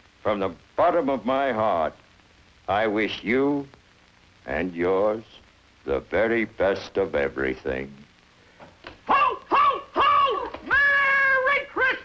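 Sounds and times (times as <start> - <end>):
children calling out: 9.1 - 12.0.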